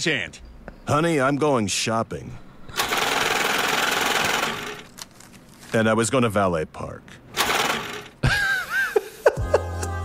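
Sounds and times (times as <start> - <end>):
cash machine rattling whir: 2.8 - 5.3, 7.3 - 8.2.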